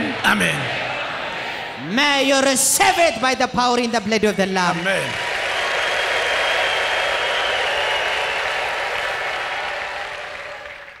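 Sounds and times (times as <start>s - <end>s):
crowd applauding: 0.0s - 1.9s, 4.2s - 11.0s.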